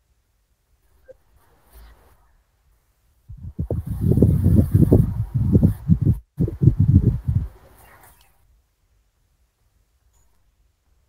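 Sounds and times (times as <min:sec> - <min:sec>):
phone microphone rubbing and bumping: 0:03.3 - 0:08.2.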